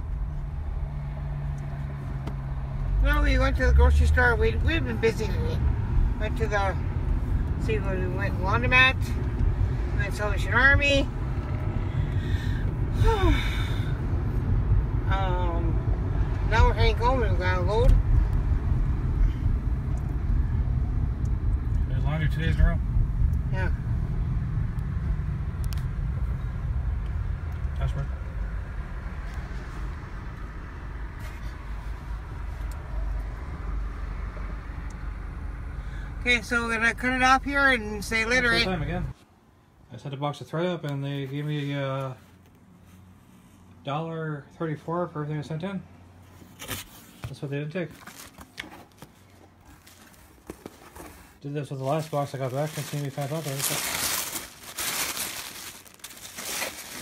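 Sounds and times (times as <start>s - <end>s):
car rumble inside cabin: 0.0s - 39.2s
tissue paper rustling: 49.6s - 57.0s.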